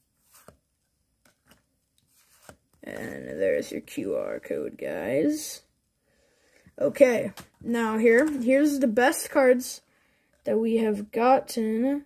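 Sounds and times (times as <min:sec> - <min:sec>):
trading cards sliding: 0:00.2 - 0:00.6, 0:01.3 - 0:03.2.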